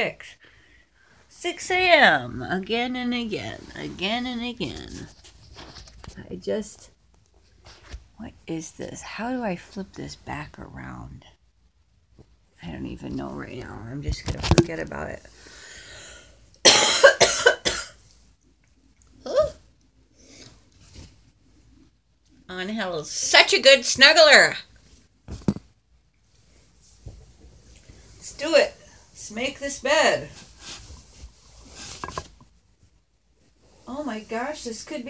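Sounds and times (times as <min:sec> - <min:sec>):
woman coughing: 0:16.6 - 0:18.0
bedding rustling: 0:24.9 - 0:35.0.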